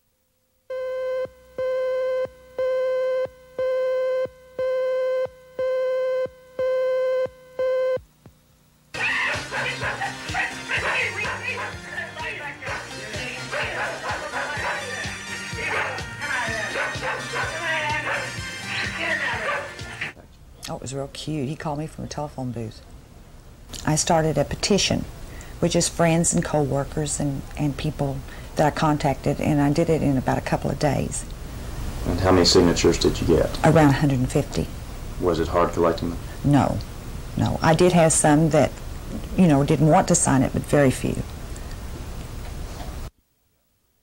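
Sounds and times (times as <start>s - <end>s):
dogs barking and yipping: 9.2s - 11.8s, 13.5s - 15.0s, 15.6s - 18.4s, 19.4s - 19.8s.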